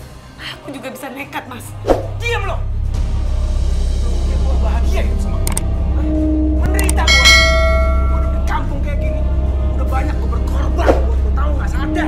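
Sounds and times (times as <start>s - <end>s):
steady low drone: 2.6s - 12.0s
bell strike ringing: 7.0s - 8.7s.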